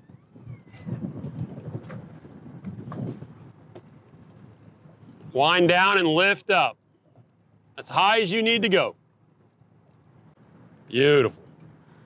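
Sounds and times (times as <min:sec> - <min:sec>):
wind buffeting microphone: 0:00.0 - 0:05.8.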